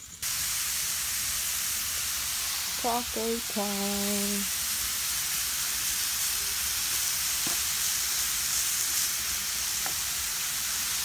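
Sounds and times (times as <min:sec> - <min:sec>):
meat and onions sizzling on griddle: 0:00.0 - 0:11.0.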